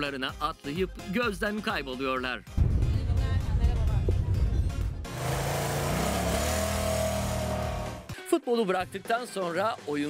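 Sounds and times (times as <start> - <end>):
scooter engine pulling away: 5.1 - 8.1.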